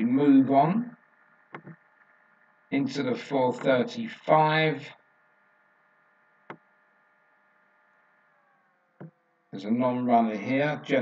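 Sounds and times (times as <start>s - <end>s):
faint steady hum: 0.0s - 11.0s
computer mouse click: 1.5s - 1.8s.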